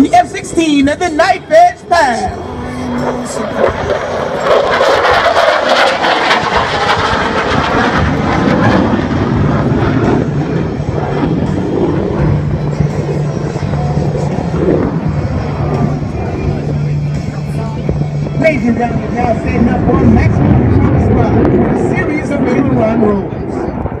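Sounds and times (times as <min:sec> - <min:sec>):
jet engine fly-by roar: 0:00.0 - 0:24.0
steady low hum: 0:00.0 - 0:24.0.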